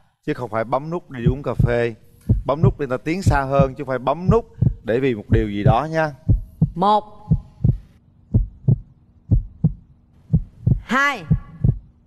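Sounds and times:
heartbeat thumps: 0:01.2 - 0:12.0.

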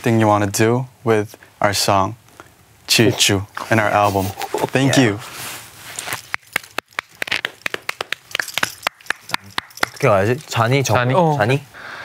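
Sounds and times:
people clapping: 0:06.2 - 0:10.1.

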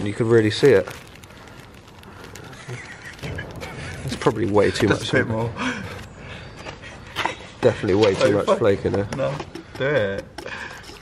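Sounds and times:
metal flakes pouring into paint: 0:00.0 - 0:04.8
plastic bag crinkling: 0:00.0 - 0:06.2.

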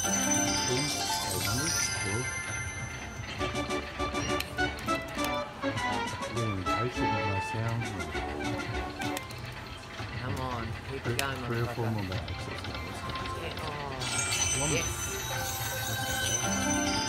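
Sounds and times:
slot machine win music: 0:00.0 - 0:17.0.

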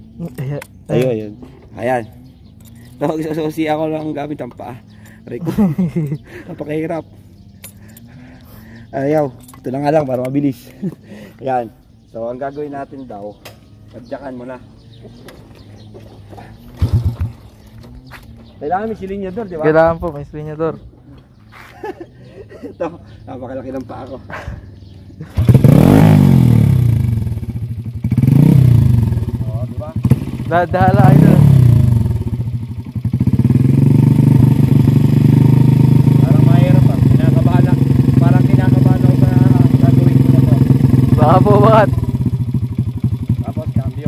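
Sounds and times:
motorcycle engine running: 0:13.6 - 0:20.0, 0:23.1 - 0:44.0.

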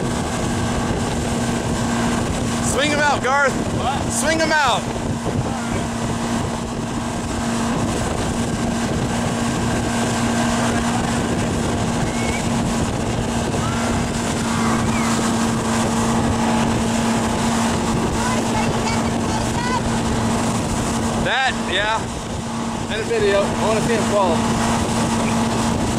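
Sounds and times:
motorboat engine humming: 0:00.0 - 0:25.9
rushing wake water: 0:00.0 - 0:25.9
wind: 0:00.0 - 0:25.9.

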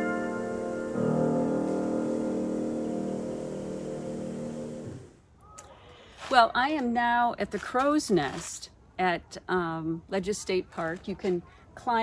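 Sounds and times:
piano chord ringing: 0:00.0 - 0:04.8.

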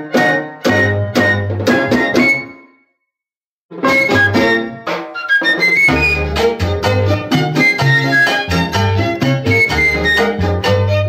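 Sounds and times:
flute: 0:00.7 - 0:02.9, 0:03.8 - 0:06.5, 0:07.5 - 0:08.6, 0:09.4 - 0:11.0
percussion: 0:03.8 - 0:11.0.

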